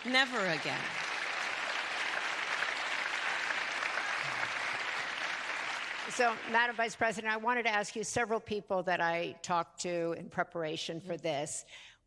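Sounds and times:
audience applauding: 0.0s - 7.0s.

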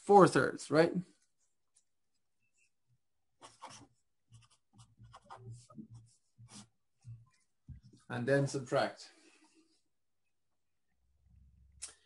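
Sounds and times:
scratchy writing strokes: 3.4s - 8.0s.

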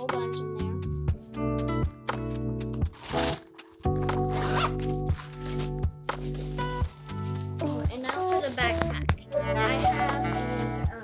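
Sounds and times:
background music of held chords: 0.0s - 11.0s
backpack zipper: 3.0s - 8.9s.

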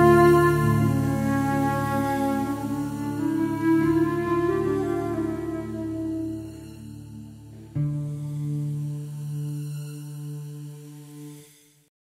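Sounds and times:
new-age drone with overtones: 0.0s - 11.9s.

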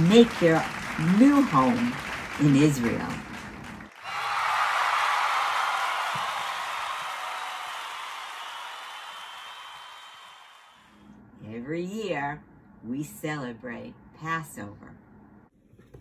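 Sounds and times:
applause and cheering: 0.0s - 10.9s.

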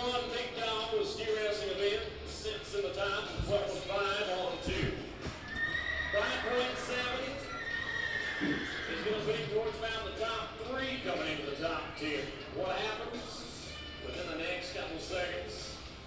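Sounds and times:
background voices: 1.7s - 5.4s
horse whinnying: 5.4s - 10.1s.

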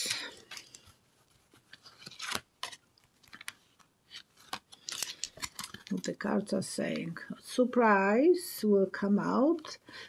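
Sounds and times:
cards shuffling: 0.0s - 7.1s.

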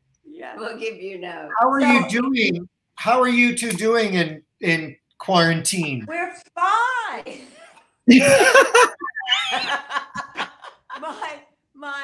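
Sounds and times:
people laughing over a video call: 7.3s - 11.7s.

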